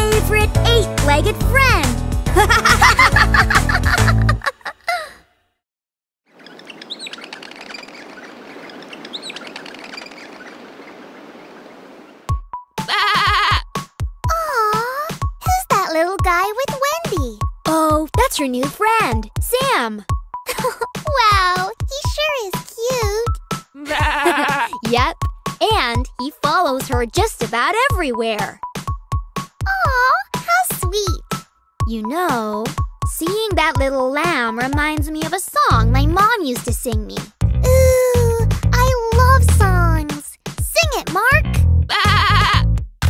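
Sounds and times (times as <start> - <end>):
children's music: 0.0 - 4.4, 12.3 - 42.8
birds chirping: 6.3 - 12.3
lamb bleating: 12.9 - 13.7, 23.8 - 24.8
children's song: 31.9 - 37.2.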